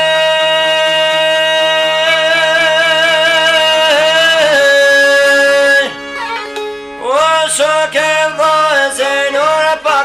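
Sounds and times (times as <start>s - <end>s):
long-necked lute playing: 2.9s - 10.0s.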